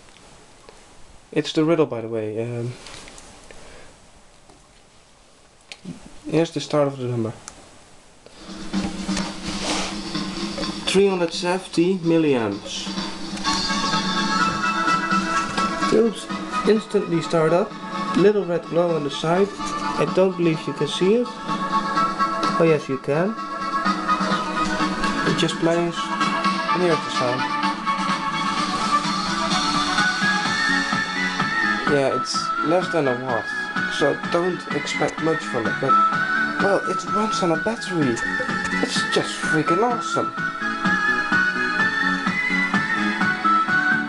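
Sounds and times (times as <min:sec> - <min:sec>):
music through small amplifier: 0:08.3 - 0:44.0.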